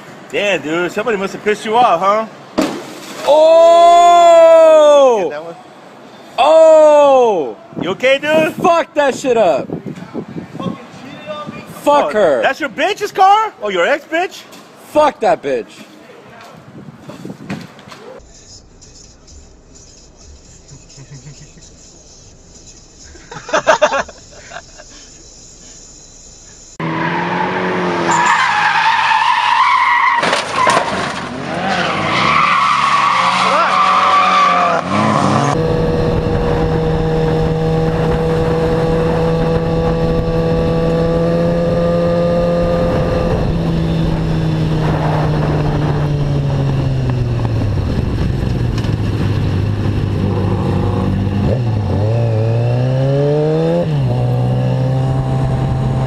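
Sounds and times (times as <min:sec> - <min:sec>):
wind noise: 0:07.6 - 0:11.9, 0:16.5 - 0:17.9, 0:35.2 - 0:52.1
motorcycle engine revving: 0:34.7 - 0:56.0.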